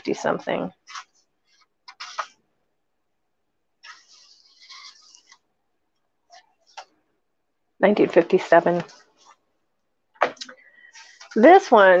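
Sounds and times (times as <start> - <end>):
book pages rustling: 0.0 - 2.5, 3.8 - 5.5, 8.1 - 9.4.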